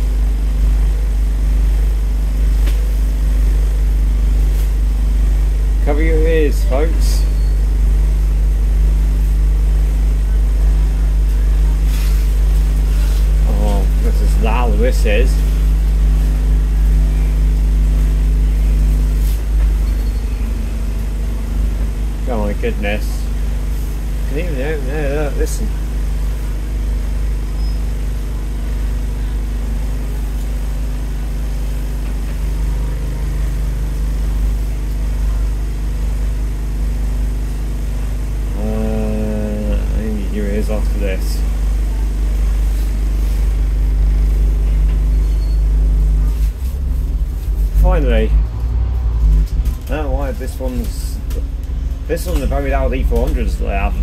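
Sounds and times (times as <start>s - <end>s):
voices: 13.4s - 15.5s, 22.2s - 23.4s, 38.5s - 41.5s, 47.8s - 48.4s, 49.9s - 54.0s.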